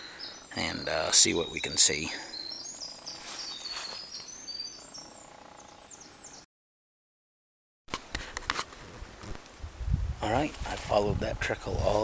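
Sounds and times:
forest ambience: 0.0s - 6.5s
songbirds singing: 0.0s - 6.5s.

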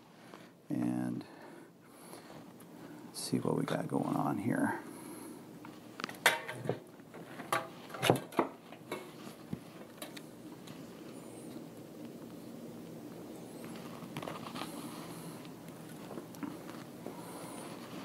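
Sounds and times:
faint handling noise: 5.6s - 18.0s.

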